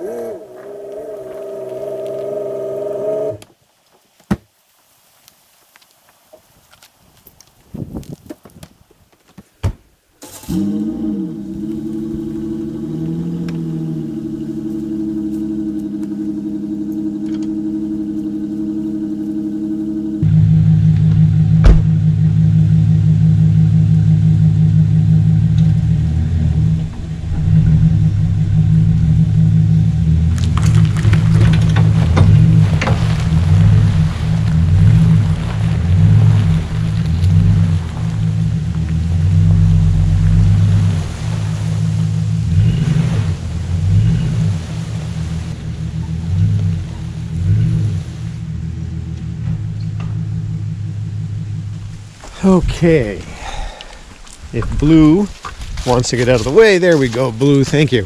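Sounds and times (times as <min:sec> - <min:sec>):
pickup truck engine: 0:10.2 - 0:58.0.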